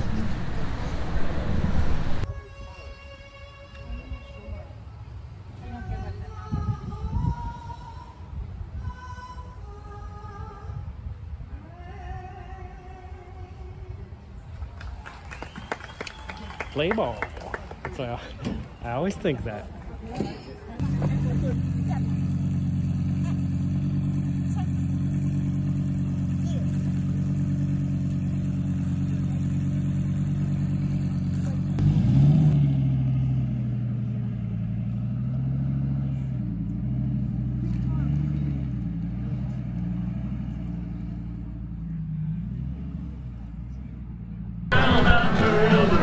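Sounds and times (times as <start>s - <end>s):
vehicle engine idling: 0.0s - 2.3s, 15.4s - 46.0s.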